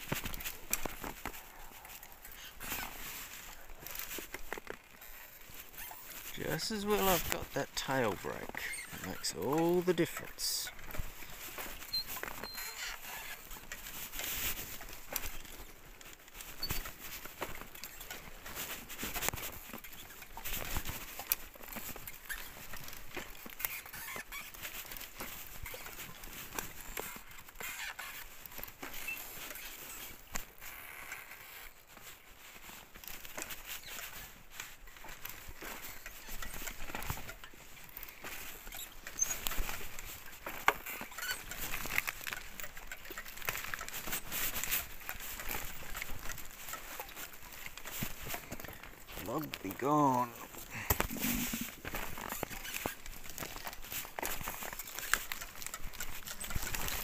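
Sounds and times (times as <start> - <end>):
frame and chain rattling: 0.0 - 30.7, 31.9 - 57.0
tyres crunching over stones: 0.0 - 30.7, 31.9 - 57.0
high squeaks: 5.0 - 10.7, 11.8 - 13.4, 23.6 - 24.5, 40.8 - 43.3, 48.7 - 52.9.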